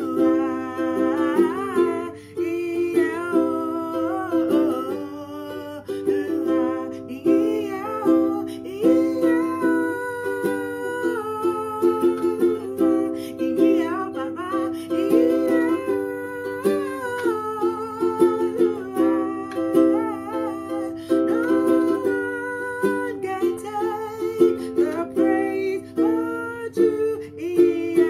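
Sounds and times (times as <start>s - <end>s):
ukulele strumming: 0.0s - 28.0s
woman singing: 0.0s - 28.0s.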